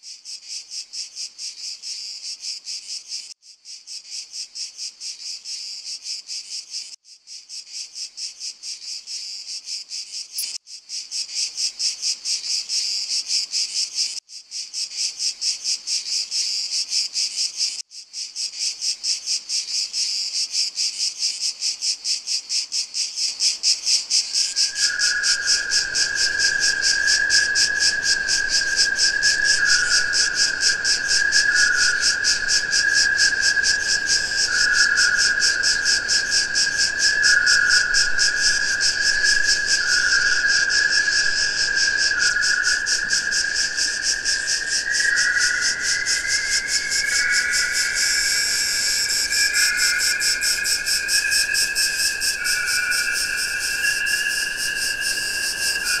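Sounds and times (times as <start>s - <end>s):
steady high tone: 42.7s - 56.0s.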